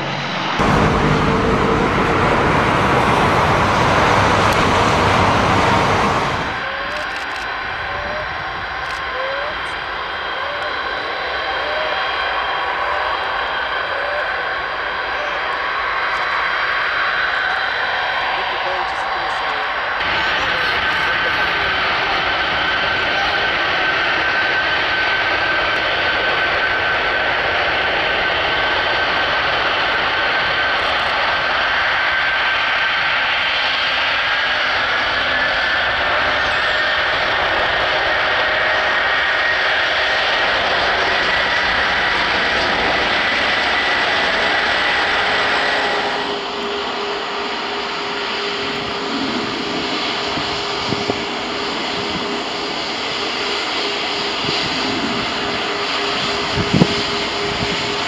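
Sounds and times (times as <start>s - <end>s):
jet airliner humming: 0.0s - 58.0s
jet engines with turbine whine: 0.0s - 58.0s.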